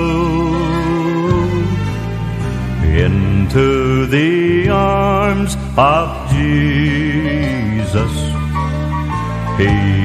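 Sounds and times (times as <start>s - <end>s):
instrumental accompaniment: 0.0s - 10.0s
male vocal trio singing: 2.8s - 8.4s, 9.6s - 10.0s.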